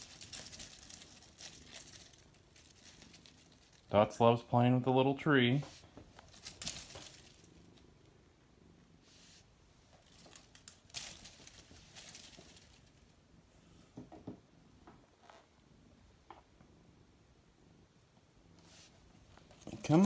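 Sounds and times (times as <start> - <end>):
cat pawing at branches: 0.0 - 3.9, 5.6 - 7.5, 9.9 - 13.1
leaves rustling: 0.0 - 3.9, 5.7 - 7.7, 10.0 - 13.1.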